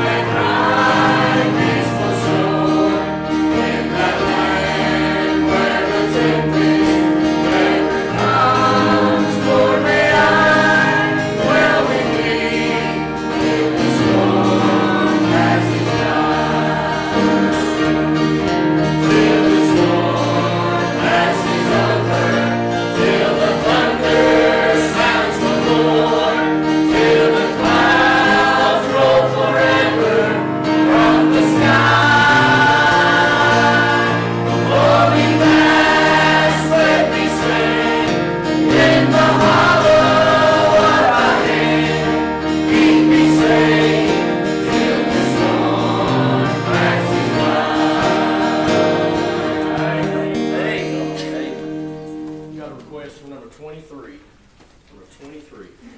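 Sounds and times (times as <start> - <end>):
choir singing a hymn: 0.0 - 52.7
instrumental accompaniment: 0.0 - 55.1.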